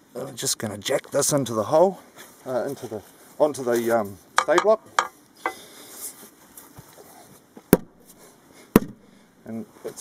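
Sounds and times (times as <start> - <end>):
hammer blows on wood: 8.7 - 9.1.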